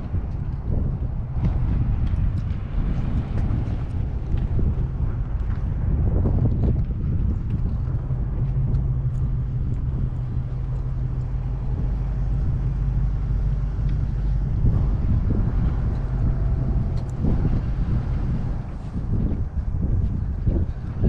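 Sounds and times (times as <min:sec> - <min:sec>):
wind on microphone: 0:00.0 - 0:21.0.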